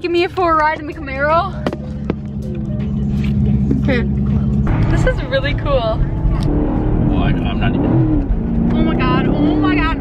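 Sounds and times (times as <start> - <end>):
car engine running from cabin: 0.0 - 10.0.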